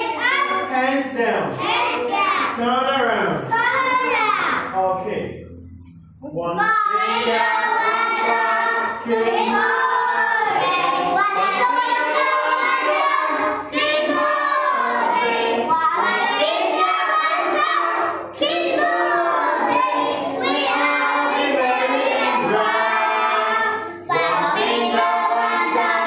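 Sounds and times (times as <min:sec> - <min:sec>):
children singing: 0:01.6 - 0:02.6, 0:06.6 - 0:26.0.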